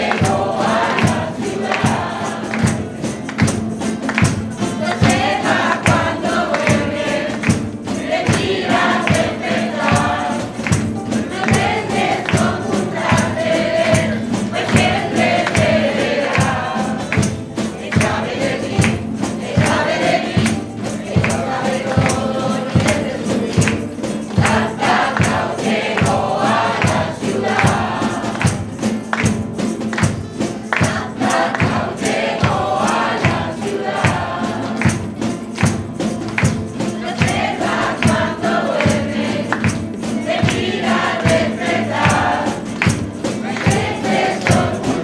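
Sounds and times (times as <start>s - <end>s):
hand clapping: 0.0s - 45.0s
mixed choir singing: 0.0s - 45.0s
percussion beat: 0.0s - 45.0s
strummed guitars and lutes: 0.0s - 45.0s.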